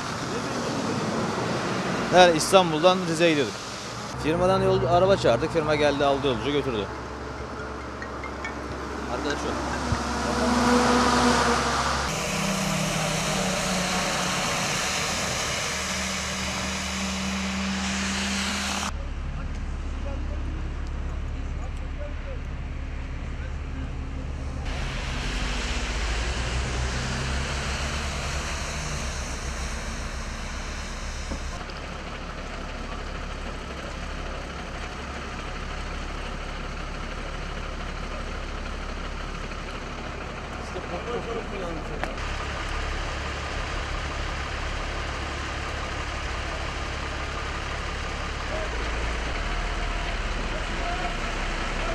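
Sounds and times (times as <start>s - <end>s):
vehicles passing on wet road: 0.0s - 19.0s, 22.5s - 51.9s.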